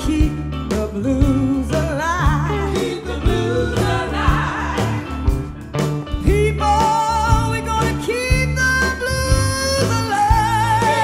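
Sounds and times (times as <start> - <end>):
bass guitar: 0.0 - 11.0
drums: 0.0 - 11.0
electric guitar: 0.0 - 11.0
women singing backing vocals: 1.2 - 5.4, 9.8 - 11.0.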